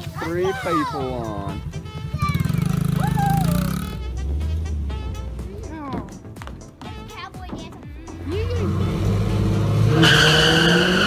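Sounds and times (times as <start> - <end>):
child's voice: 0.0 - 3.6, 7.0 - 8.7
background music bass note: 1.0 - 7.2, 7.9 - 11.0.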